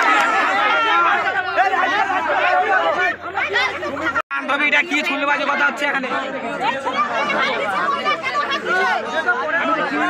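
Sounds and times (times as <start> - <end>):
people arguing over one another: 0.0 - 10.0.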